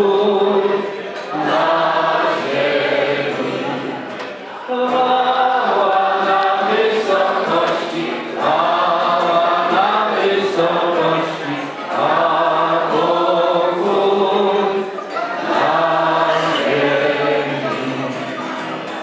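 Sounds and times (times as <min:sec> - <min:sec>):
group singing a carol in unison: 0:00.0 - 0:04.1, 0:04.7 - 0:18.6.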